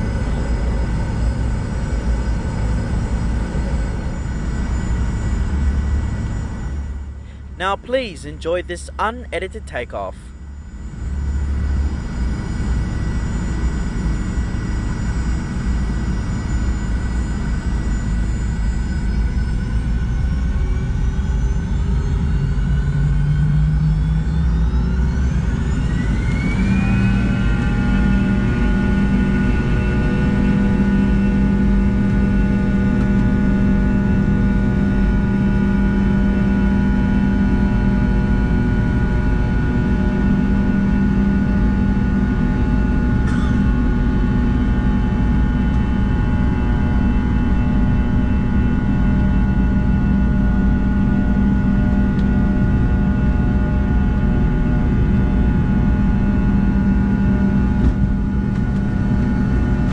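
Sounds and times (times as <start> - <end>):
jet engines whining: 0.0 - 59.9.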